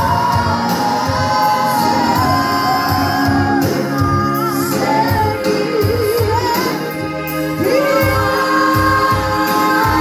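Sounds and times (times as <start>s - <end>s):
woman singing gospel with vibrato: 0.0s - 10.0s.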